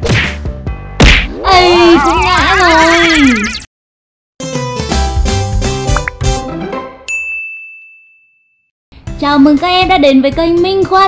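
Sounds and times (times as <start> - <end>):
bright notification bell ding: 7.1 - 8.6.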